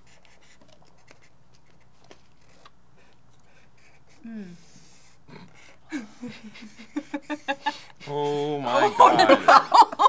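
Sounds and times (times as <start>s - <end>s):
marker scratching on paper: 0.0s - 4.2s.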